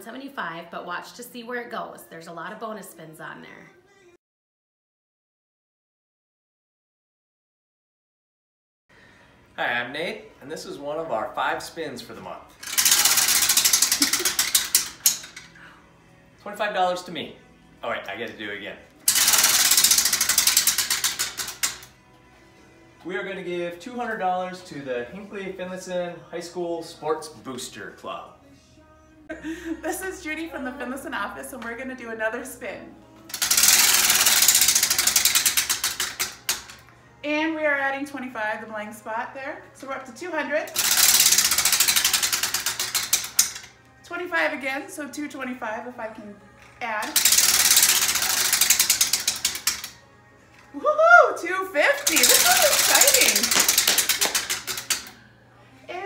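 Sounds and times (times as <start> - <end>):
prize wheel clicker flapping: 12.6 - 15.6, 19.0 - 22.0, 33.3 - 36.8, 40.7 - 43.7, 47.0 - 50.0, 52.0 - 55.2.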